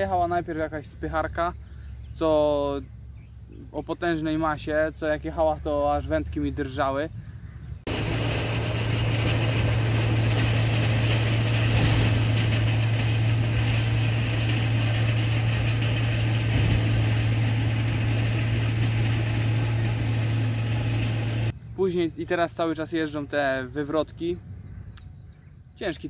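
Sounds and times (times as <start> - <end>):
heavy vehicle engine drone: 6.0 - 22.2.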